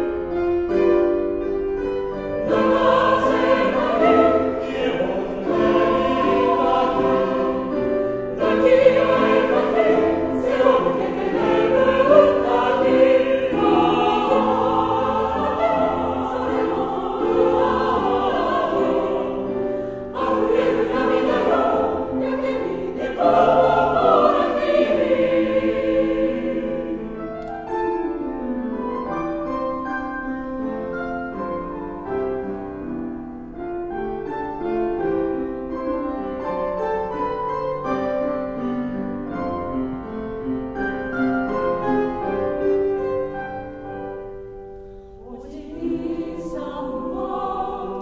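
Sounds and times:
mixed choir singing: 0:02.4 - 0:27.3, 0:45.1 - 0:48.0.

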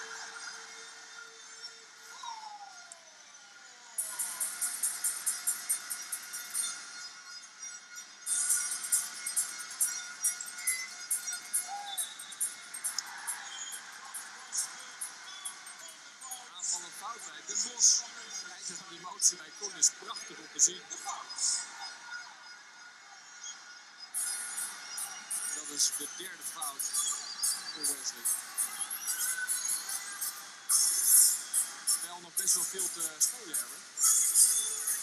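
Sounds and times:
arena crowd noise: 0:00.0 - 0:02.0, 0:10.9 - 0:35.0.

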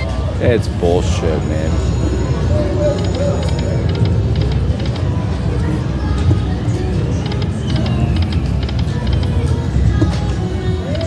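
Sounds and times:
slot machine game sound: 0:00.0 - 0:05.4
low casino rumble: 0:00.0 - 0:11.0.

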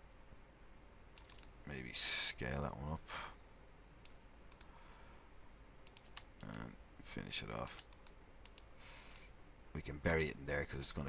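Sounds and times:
faint computer mouse clicks: 0:01.2 - 0:01.6, 0:04.0 - 0:04.8, 0:05.8 - 0:06.7, 0:07.7 - 0:09.3.

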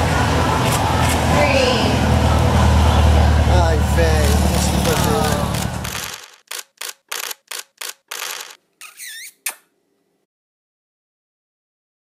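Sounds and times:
short clicking bursts: 0:04.2 - 0:09.6
squeaky chirp: 0:08.1 - 0:09.7.

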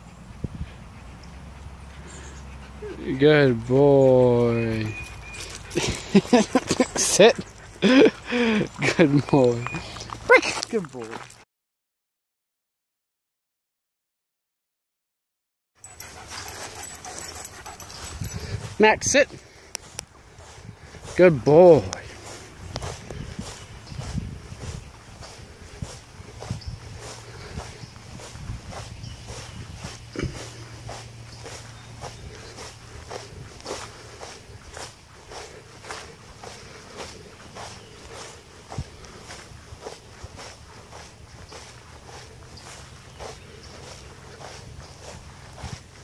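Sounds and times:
footsteps on grass: 0:01.6 - 0:11.4, 0:15.9 - 0:46.0.

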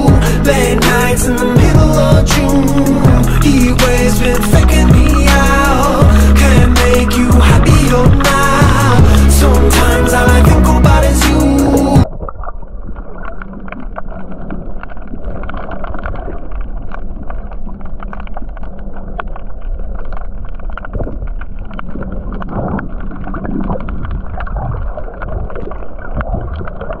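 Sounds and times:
underwater water sloshing and gurgling: 0:00.0 - 0:27.0
small clicks and crackles: 0:12.0 - 0:27.0.

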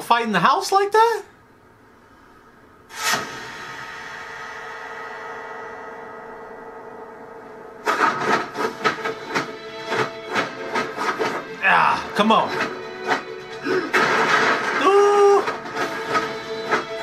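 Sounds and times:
punch and block hit effects: 0:02.9 - 0:06.0
sustained ringing chord: 0:03.0 - 0:17.0.

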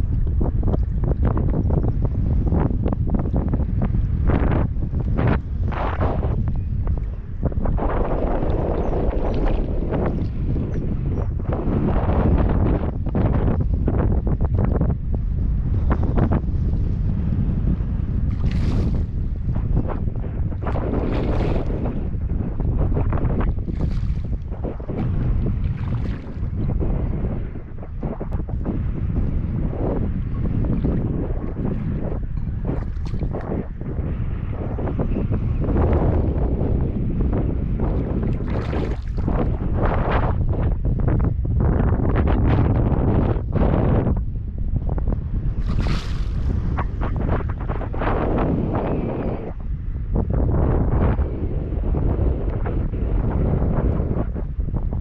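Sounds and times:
choppy lake water: 0:00.0 - 0:55.0
wind buffeting microphone: 0:00.0 - 0:55.0.

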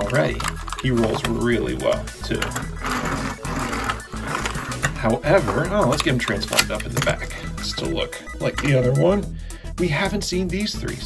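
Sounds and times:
toy car wheels rolling on table: 0:00.0 - 0:07.2
background music: 0:00.0 - 0:11.0.

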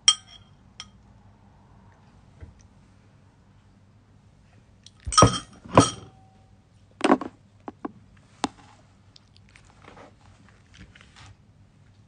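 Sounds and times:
ceramic bowl clinking: 0:00.0 - 0:00.5, 0:05.0 - 0:06.3.

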